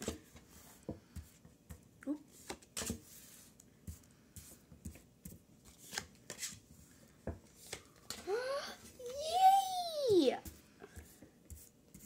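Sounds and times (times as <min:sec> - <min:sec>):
cards sliding on wooden table: 0:02.4 - 0:04.6.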